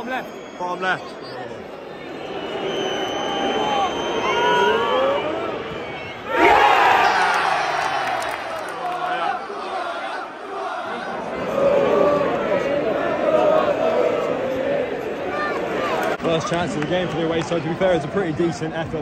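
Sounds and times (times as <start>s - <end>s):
stadium crowd noise: 0.0s - 19.0s
crowd roar of cheering: 1.6s - 17.8s.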